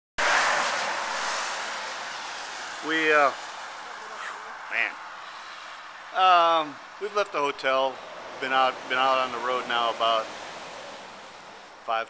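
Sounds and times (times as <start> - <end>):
tyres hissing on wet road: 0.2 - 7.0, 7.8 - 11.9.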